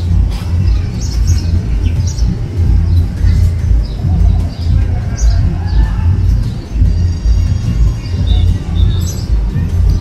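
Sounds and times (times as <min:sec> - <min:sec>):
small birds chirping: 0:00.0 - 0:10.0
wind rumbling on microphone: 0:00.0 - 0:10.0.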